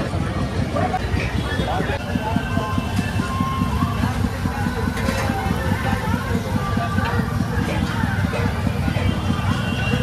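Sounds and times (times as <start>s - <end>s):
faint voices: 0.0s - 10.0s
gas burner rumbling: 0.0s - 10.0s.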